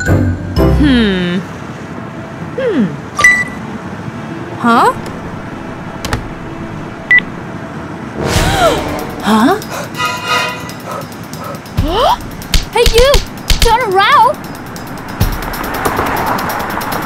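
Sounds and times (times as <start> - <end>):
background music with vocal sounds: 8.2 - 12.5.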